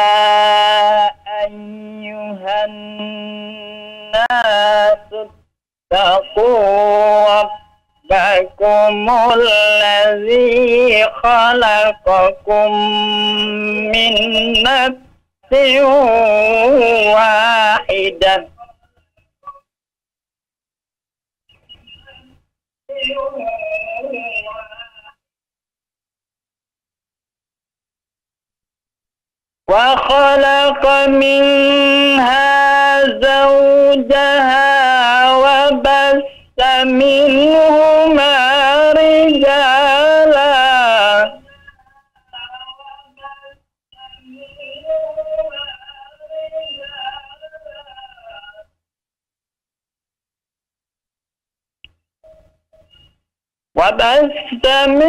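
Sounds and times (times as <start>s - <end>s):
man chanting over a telephone: 0.0s - 18.8s, 22.9s - 25.2s, 29.7s - 48.8s, 53.8s - 55.0s.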